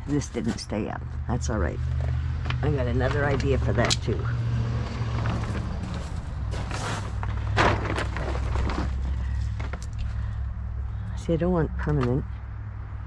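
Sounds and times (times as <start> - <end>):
footsteps on gravel: 0.0 - 3.6, 4.8 - 10.2
plastic tarp rustling: 5.0 - 10.3.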